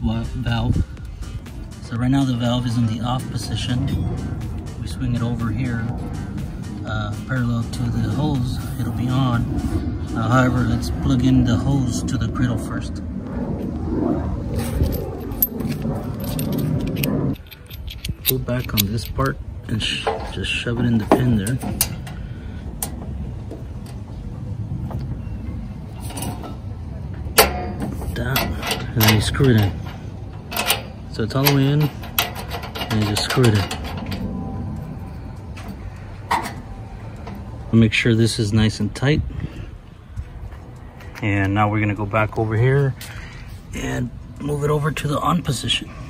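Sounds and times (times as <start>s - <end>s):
wind and handling rumble: 0.0s - 46.0s
metal fitting clinking: 14.8s - 22.2s, 27.3s - 34.2s.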